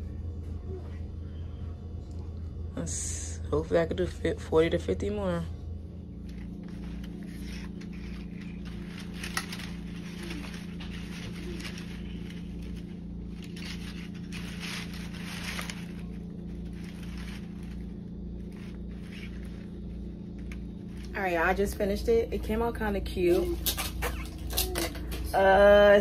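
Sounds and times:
low throbbing hum: 0.0s - 26.0s
paper and tape rustling: 6.2s - 21.7s, 23.2s - 25.6s.

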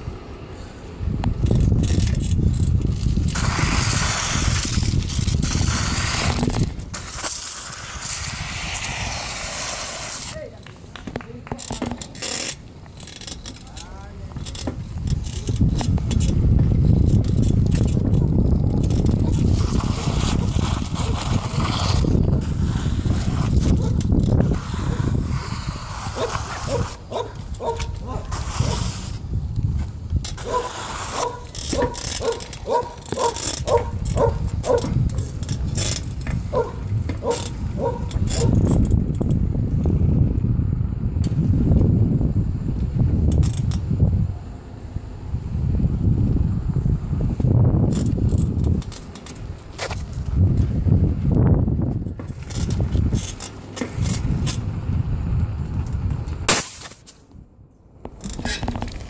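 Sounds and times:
wind rushing over microphone: 0.0s - 56.5s
bicycle tyre noise: 0.0s - 57.3s, 58.1s - 59.0s
bicycle clicks and rattles: 1.1s - 9.1s, 10.0s - 40.6s, 41.2s - 44.4s, 47.4s - 57.4s, 58.0s - 59.0s.

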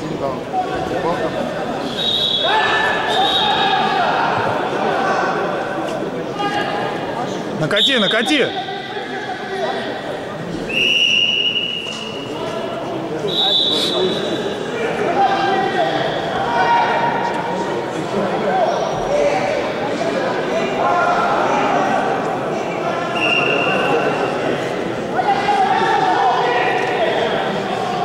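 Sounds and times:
men shouting in echoing hall: 0.5s - 7.2s, 12.2s - 28.0s
short high whistle blasts: 13.3s - 14.3s.

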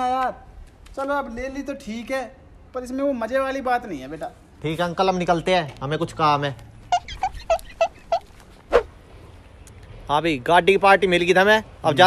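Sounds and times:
animal high calls: 6.9s - 8.9s.

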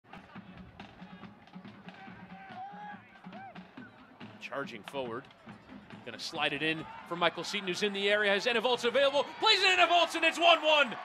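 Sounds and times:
steady drum beat: 0.1s - 6.8s.

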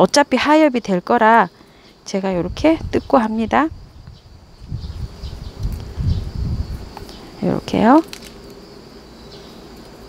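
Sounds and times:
plant stems ticking: 7.8s - 8.6s.

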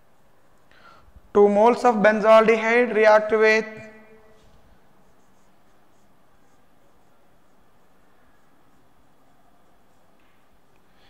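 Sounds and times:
low room hiss: 0.0s - 11.0s
marker pen writing on whiteboard: 0.0s - 11.0s.

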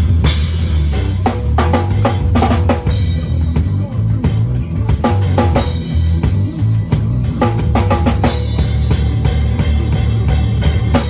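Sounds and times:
acoustic drum kit playing: 0.0s - 11.0s
recorded song with bass line: 0.0s - 11.0s.

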